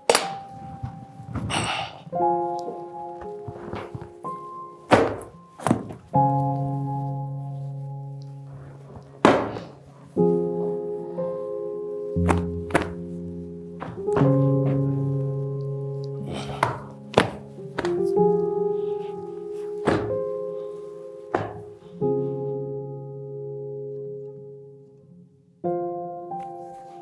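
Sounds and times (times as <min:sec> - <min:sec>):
background music of held notes: 0:00.0 - 0:27.0
cushions thudding: 0:00.1 - 0:06.2, 0:08.8 - 0:09.9, 0:12.2 - 0:15.1, 0:16.2 - 0:18.3, 0:19.0 - 0:20.4, 0:21.3 - 0:21.9
cloth thudding on sofa: 0:19.8 - 0:20.2.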